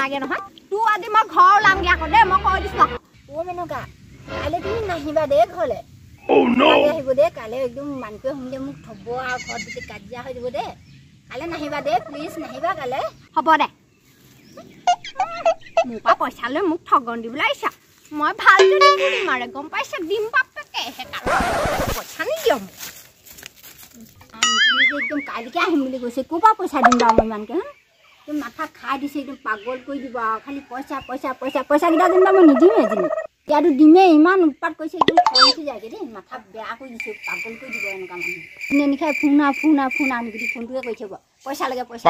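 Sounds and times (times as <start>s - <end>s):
woman speaking: 0.0s - 13.6s, 15.8s - 21.2s, 24.4s - 27.7s, 28.3s - 34.2s, 35.0s - 42.0s
woman's wavering voice: 18.6s - 19.4s, 31.9s - 33.3s
chicken clucking: 31.9s - 33.3s.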